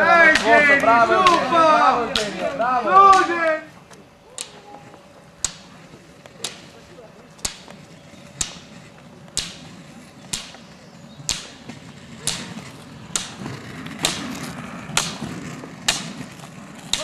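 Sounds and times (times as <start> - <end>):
ski pole tips striking asphalt: 2.1 - 3.4, 5.4 - 6.8, 7.4 - 17.0.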